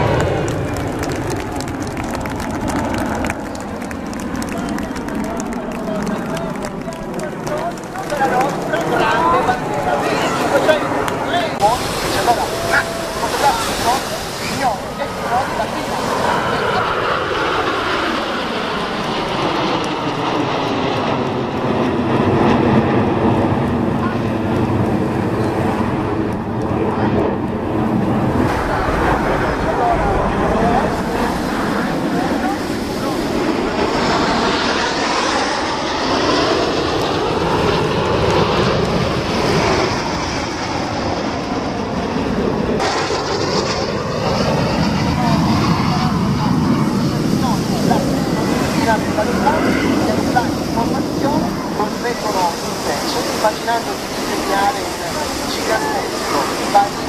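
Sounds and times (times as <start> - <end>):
jet engines flying past: 0.0 - 57.0.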